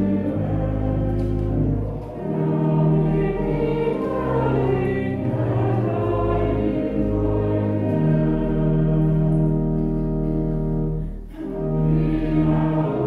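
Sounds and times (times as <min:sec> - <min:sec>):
congregation singing a hymn: 0:00.0 - 0:13.0
sustained low accompanying notes: 0:00.0 - 0:13.0.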